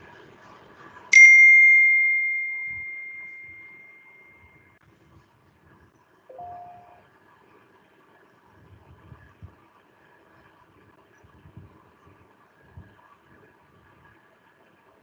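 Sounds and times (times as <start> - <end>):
rising two-note blip: 1.1 - 4.5, 6.3 - 7.0
loud bell-like ding: 1.1 - 4.6.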